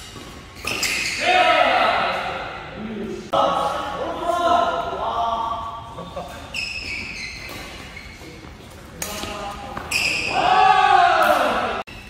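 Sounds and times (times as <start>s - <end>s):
sneakers squeaking on court: 0.0s - 1.2s, 6.3s - 10.4s
players' voices: 1.1s - 11.9s.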